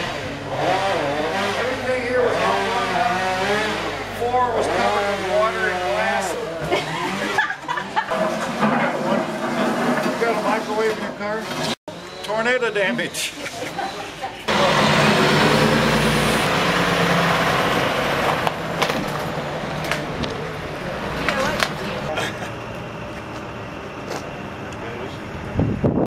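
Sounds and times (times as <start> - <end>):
truck engine humming: 11.9 - 26.0.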